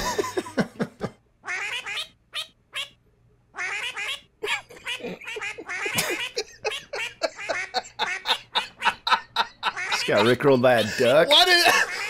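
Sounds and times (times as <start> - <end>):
duck quacking: 1.5 - 3.0, 3.6 - 8.8.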